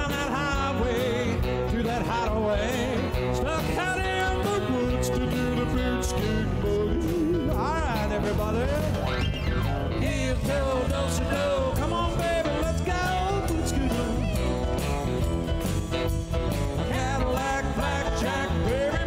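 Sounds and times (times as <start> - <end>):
bass: 0.0 - 19.0
drums: 0.0 - 19.0
electric guitar lead: 0.0 - 19.0
keyboard: 0.0 - 19.0.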